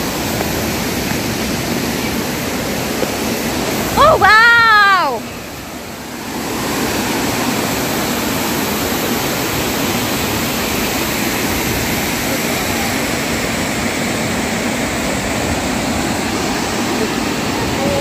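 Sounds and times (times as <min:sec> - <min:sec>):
waterfall roaring: 0:00.0 - 0:18.0.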